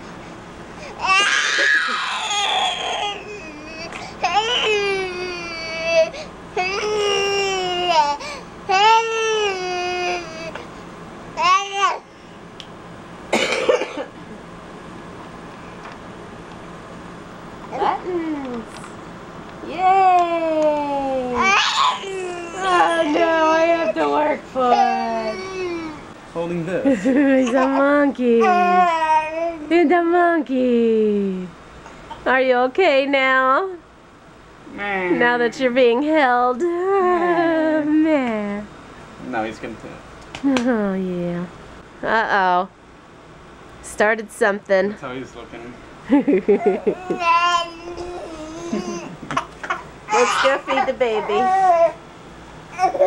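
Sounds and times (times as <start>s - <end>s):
baby crying in long wails: 1.0s - 10.6s, 21.3s - 26.0s, 50.1s - 52.0s.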